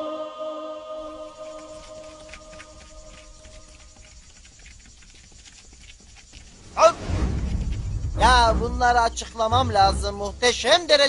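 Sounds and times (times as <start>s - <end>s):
background music: 0.0s - 2.0s, 6.8s - 11.0s
footsteps running on rough ground: 1.4s - 8.3s.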